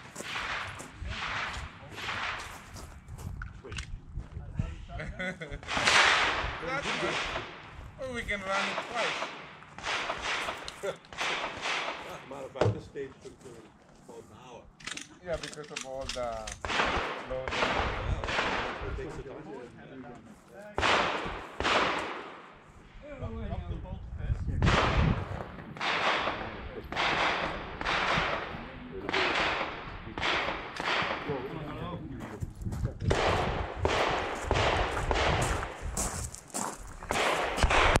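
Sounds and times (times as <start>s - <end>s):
gunshots echoing: 0.0s - 3.0s, 5.6s - 12.5s, 16.4s - 19.1s, 20.8s - 22.8s, 24.6s - 31.8s, 33.1s - 35.8s, 37.1s - 38.0s
voices: 3.5s - 9.6s, 10.4s - 21.4s, 25.6s - 33.1s.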